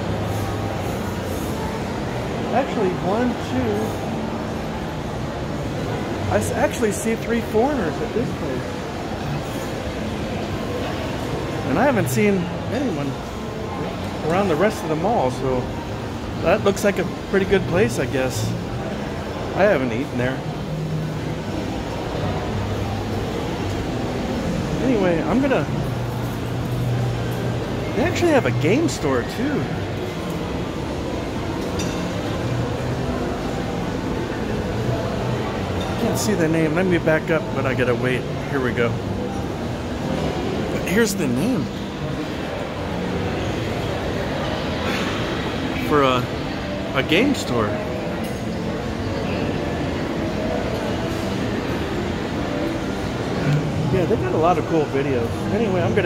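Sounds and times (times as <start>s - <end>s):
background noise: 0.0s - 56.0s
shopping mall din: 0.0s - 56.0s.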